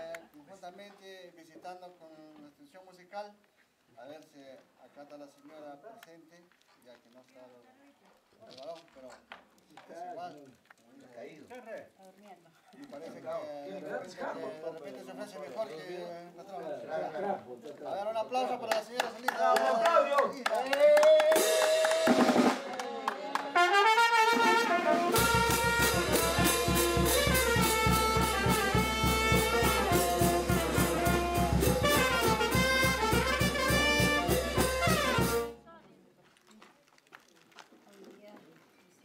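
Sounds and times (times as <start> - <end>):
fast drum beat: 21.2 - 22.7, 24.8 - 35.5
brass band playing: 21.3 - 35.7.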